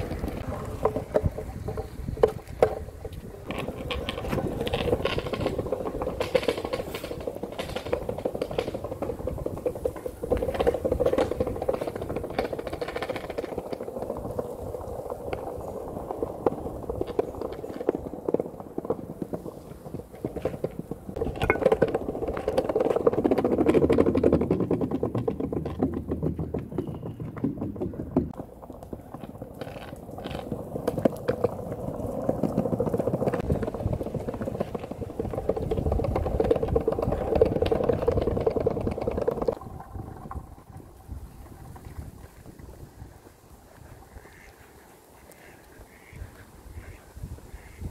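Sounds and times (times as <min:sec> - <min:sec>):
quiet outdoor background: 0:00.0 - 0:47.9
skateboard wheels rolling on bricks: 0:00.0 - 0:47.9
wheels clicking over brick joints: 0:00.0 - 0:47.9.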